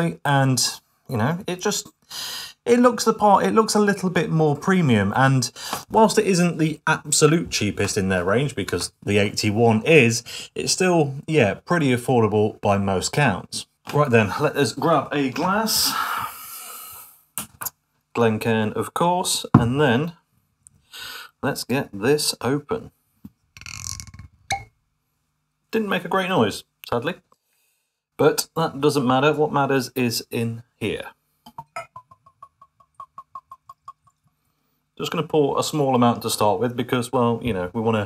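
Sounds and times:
breathy exhale: 2.1 - 2.6
glass clicks: 23.6 - 24.7, 31.5 - 34.2
liquid glugging from bottle: 31.5 - 34.3.

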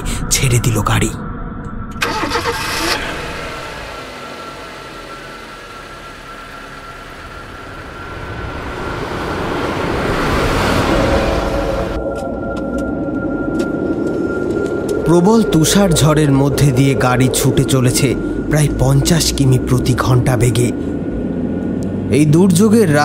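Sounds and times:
car engine starting and pulling away: 1.9 - 23.0.

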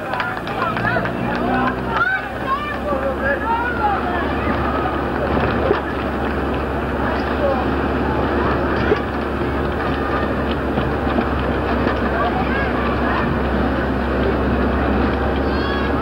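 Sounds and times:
steady rumbling noise: 0.0 - 16.0.

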